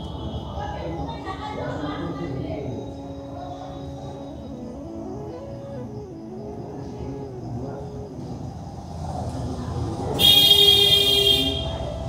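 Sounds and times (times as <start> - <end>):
loud shrill horn blast: 10.2 - 11.8.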